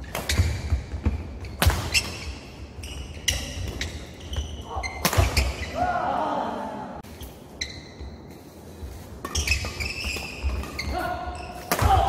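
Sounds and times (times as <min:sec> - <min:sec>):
shoes squeaking: 0:00.0 - 0:05.8, 0:07.1 - 0:11.8.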